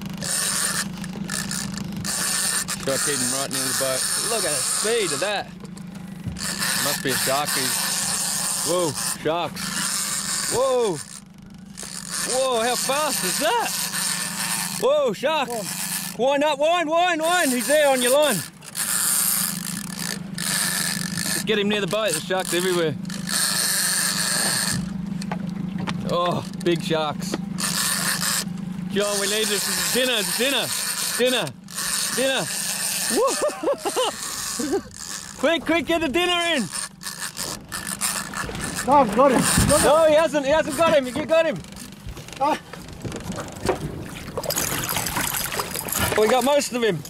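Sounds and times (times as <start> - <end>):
fishing reel whirring: 0.0 - 16.5, 17.2 - 47.0
boat engine idling: 0.0 - 47.0
water splashing: 36.6 - 47.0.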